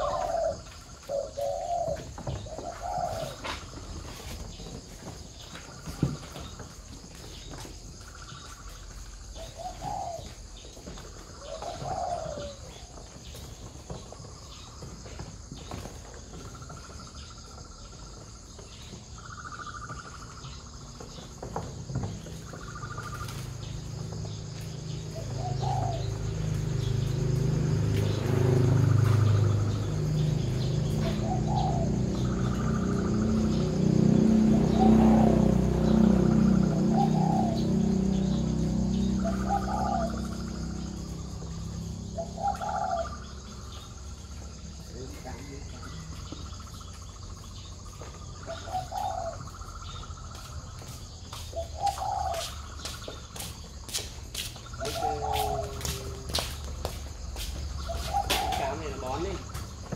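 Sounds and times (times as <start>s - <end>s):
doves cooing: 0.0s - 53.4s, 54.6s - 59.9s
birds calling: 0.0s - 59.9s.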